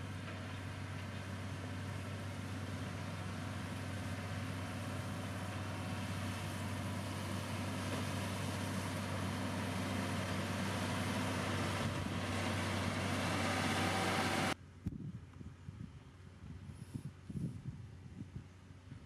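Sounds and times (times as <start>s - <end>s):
diesel engine droning: 0.0s - 14.8s.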